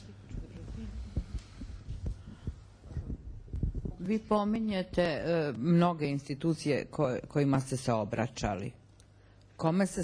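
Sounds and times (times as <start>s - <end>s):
microphone handling thumps: 0.3s - 4.2s.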